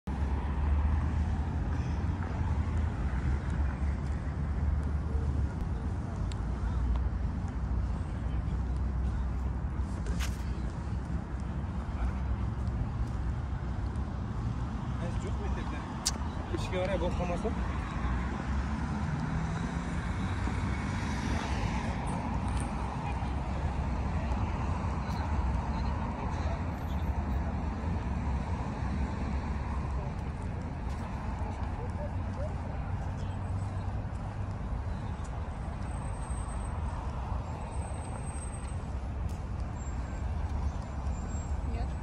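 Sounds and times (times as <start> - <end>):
low city rumble: 0.0 - 42.0.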